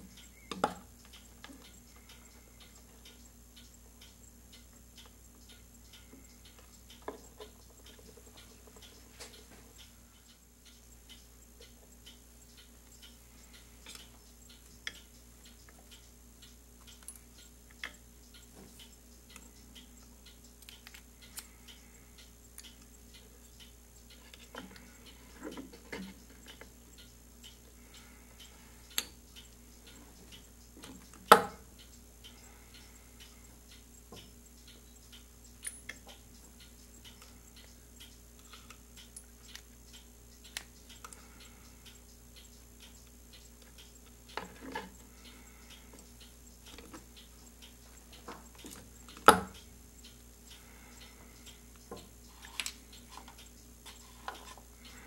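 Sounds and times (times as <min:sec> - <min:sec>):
steady regular ticking: 0:00.0 - 0:55.0.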